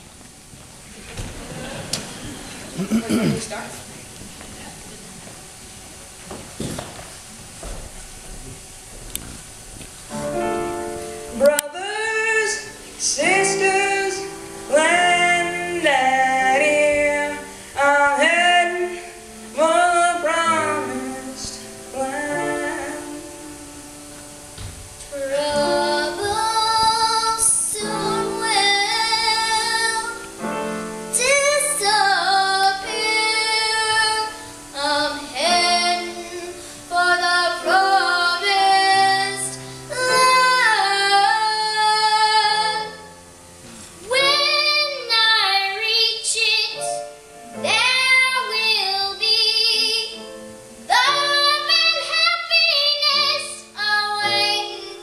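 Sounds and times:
young soloists singing: 0:11.4 - 0:23.8, 0:25.1 - 0:43.0, 0:50.9 - 0:55.0.

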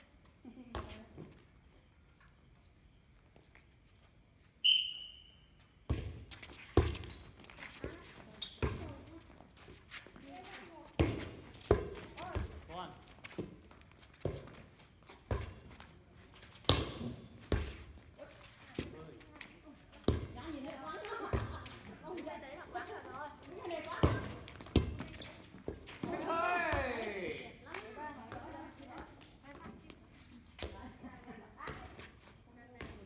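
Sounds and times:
short high whistle: 0:04.6 - 0:05.4
voices calling: 0:25.1 - 0:30.2.

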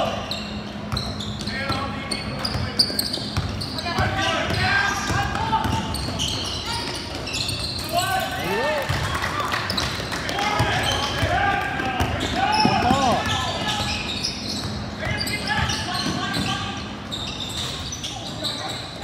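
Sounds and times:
shouting and voices echoing: 0:03.7 - 0:17.2
basketball dribbling: 0:09.7 - 0:16.5.

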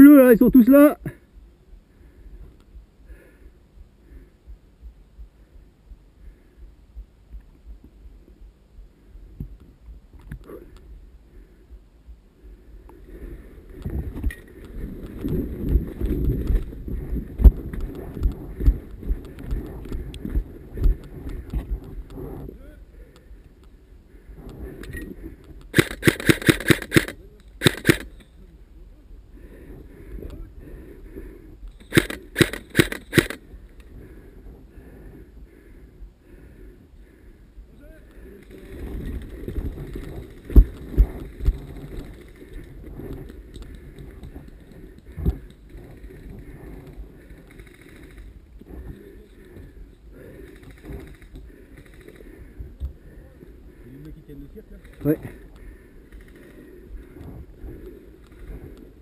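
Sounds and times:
airsoft gun full-auto bursts: 0:25.7 - 0:28.2, 0:31.8 - 0:33.4
rustling through brush: 0:31.8 - 0:34.7, 0:38.2 - 0:52.5.

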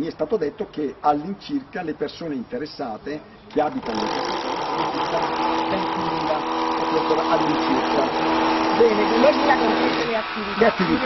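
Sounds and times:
machine drone humming: 0:03.6 - 0:11.0.

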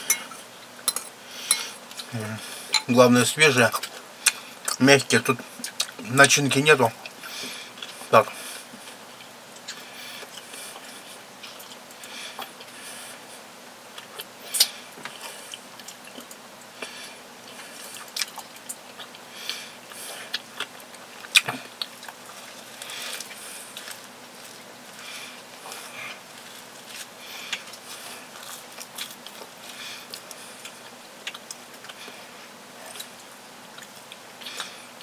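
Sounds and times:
person chewing croissant: 0:05.5 - 0:06.0, 0:07.0 - 0:35.0.

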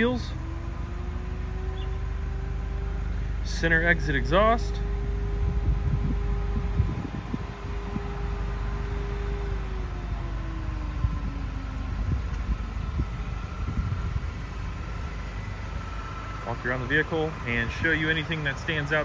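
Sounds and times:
steady mechanical hum: 0:00.0 - 0:19.0
uneven low rumble: 0:01.3 - 0:15.6.

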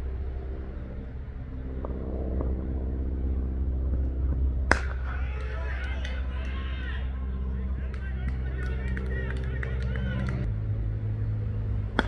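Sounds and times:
low rumble and hum: 0:00.0 - 0:12.0
cricket bat striking ball: 0:04.7 - 0:05.2.

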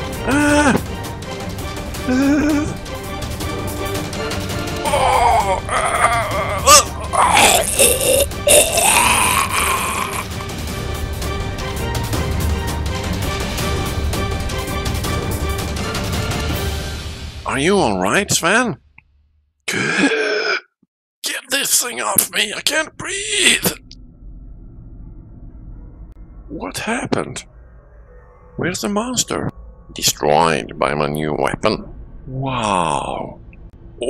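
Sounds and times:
background music: 0:00.0 - 0:18.7, 0:26.2 - 0:34.0
cartoon character strained cry: 0:04.8 - 0:10.3.

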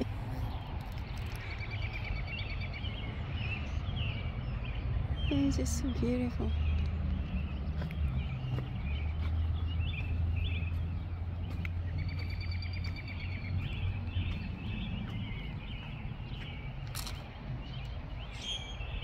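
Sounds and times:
songbirds chirping and singing: 0:00.0 - 0:19.0.

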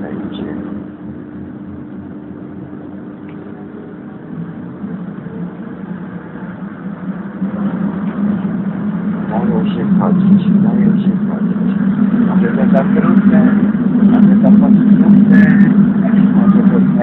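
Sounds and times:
vehicle motor hum: 0:00.0 - 0:17.0.

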